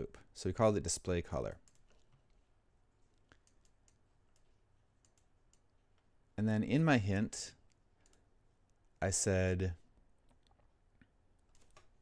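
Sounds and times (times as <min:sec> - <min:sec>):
faint clicks: 0:03.1 - 0:06.1, 0:07.7 - 0:08.8.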